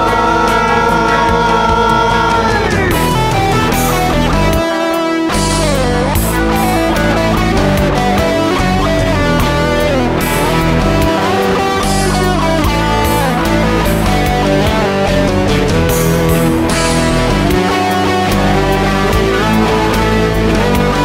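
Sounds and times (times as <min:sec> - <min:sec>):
bass guitar: 0:00.0 - 0:21.0
electric guitar: 0:00.0 - 0:21.0.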